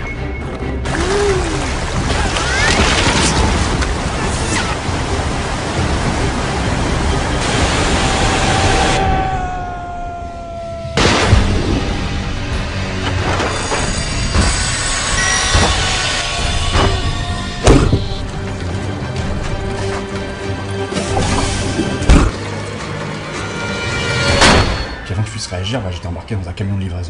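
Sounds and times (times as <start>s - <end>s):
dramatic music: 0.0s - 26.6s
rushing whitewater: 0.9s - 9.5s.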